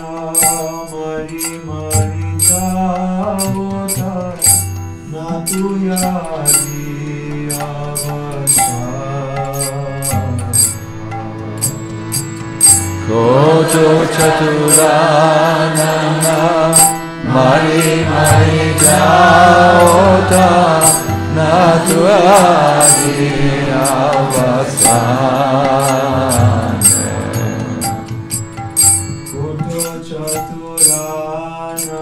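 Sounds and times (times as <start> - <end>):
steady drone: 0.0 - 31.9
hand cymbals striking: 0.0 - 32.0
man singing devotional song: 0.0 - 32.0.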